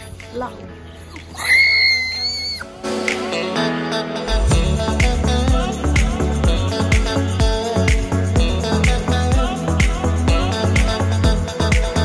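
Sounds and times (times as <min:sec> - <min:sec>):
person squealing: 0:01.2 - 0:02.7.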